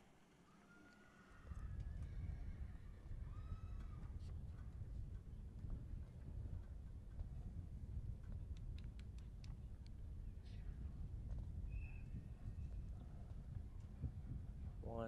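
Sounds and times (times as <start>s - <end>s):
wind rumble on microphone: 1.4s - 15.0s.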